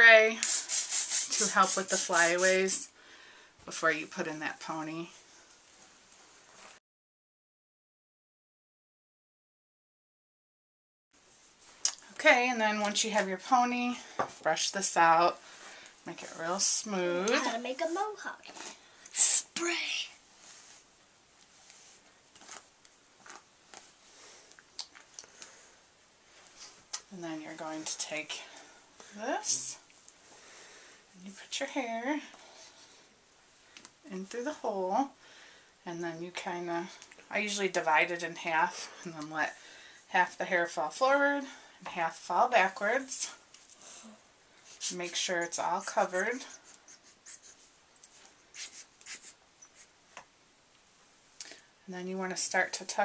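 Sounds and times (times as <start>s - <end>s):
hairbrush strokes through hair: 0.3s - 2.9s, 44.6s - 50.0s.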